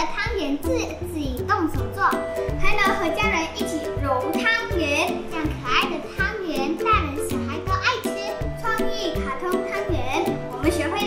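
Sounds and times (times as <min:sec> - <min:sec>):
cheerful backing music: 0:00.0 - 0:11.0.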